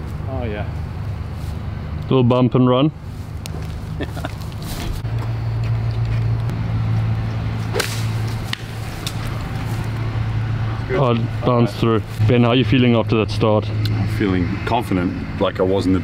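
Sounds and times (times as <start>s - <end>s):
steady low hum: 0.0s - 16.0s
golf club hitting ball: 7.6s - 9.4s.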